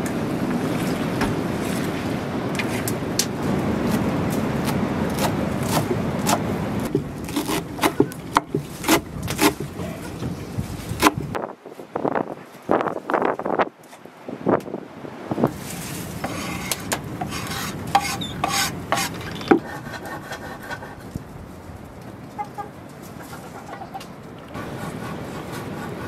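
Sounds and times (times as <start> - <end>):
knife scraping leaves into metal tray: 15.5 - 20.9
chicken clucking: 22.4 - 26.0.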